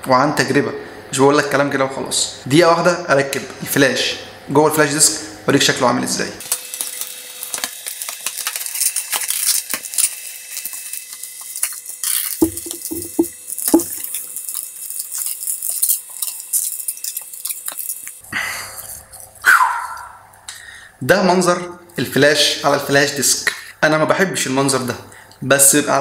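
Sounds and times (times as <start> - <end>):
short knocks: 12.4 - 14.0.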